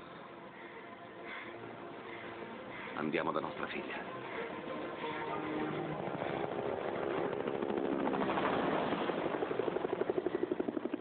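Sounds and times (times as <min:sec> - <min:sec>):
helicopter rotor chopping: 0:04.5 - 0:11.0.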